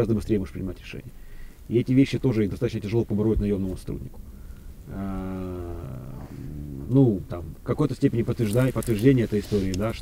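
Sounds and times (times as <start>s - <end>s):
man humming hesitantly: 4.9s - 7.0s.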